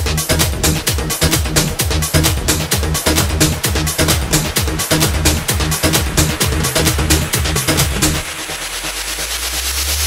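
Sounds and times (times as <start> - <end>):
kick drum: 0.0 - 8.4
noise sweep: 0.2 - 10.0
held low bass note: 0.5 - 8.4.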